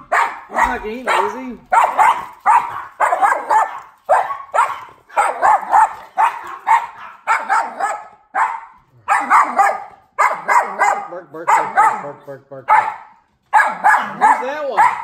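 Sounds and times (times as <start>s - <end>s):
small dog barking: 0.0s - 15.0s.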